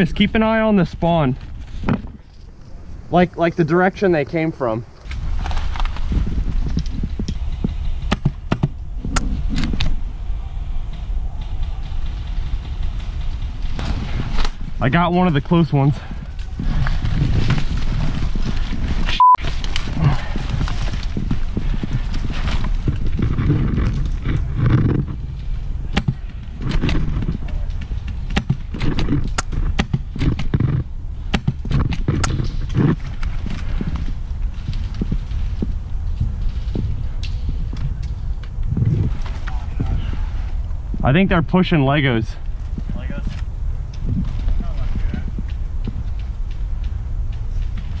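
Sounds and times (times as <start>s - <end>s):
microphone rumble: 0.0s - 48.0s
rustling through dry brush: 0.0s - 48.0s
short steady beep: 19.1s - 19.4s.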